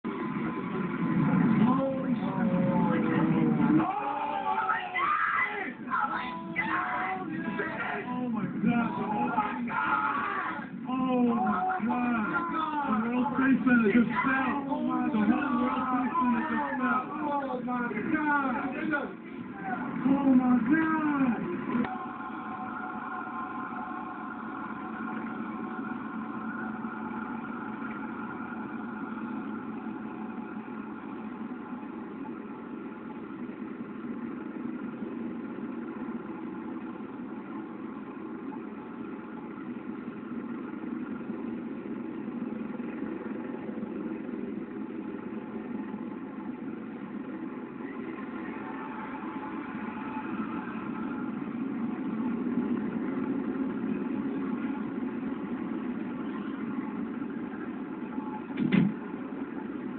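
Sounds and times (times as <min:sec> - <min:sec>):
low engine-like rumble: 0:00.0 - 0:59.9.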